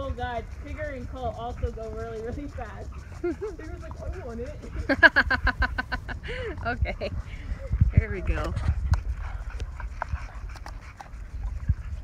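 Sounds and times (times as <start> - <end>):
dogs scuffling on dirt: 0.0 - 12.0.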